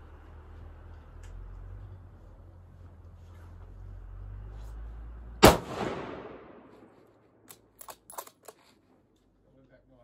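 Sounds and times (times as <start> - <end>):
rifle shot with echo: 5.4 - 6.9.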